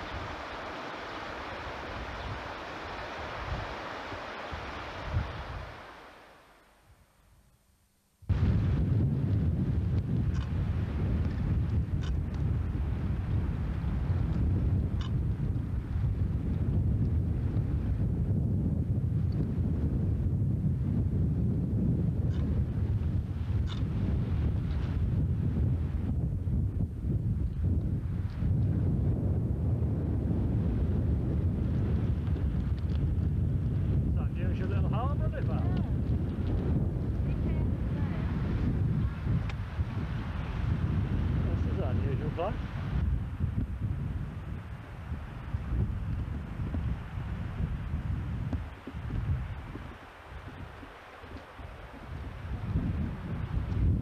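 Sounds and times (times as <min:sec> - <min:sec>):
wind buffeting microphone: 0:00.0 - 0:06.0, 0:08.3 - 0:54.0.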